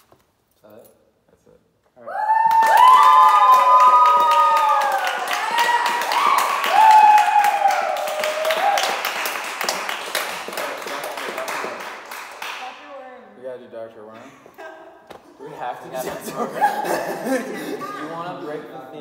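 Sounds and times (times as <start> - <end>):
voices whooping and cheering: 2.0 - 9.2
quick clapping: 2.5 - 12.7.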